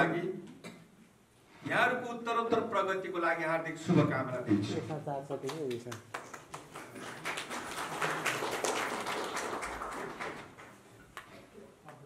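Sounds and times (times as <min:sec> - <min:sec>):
audience applause: 0:06.1 - 0:10.8.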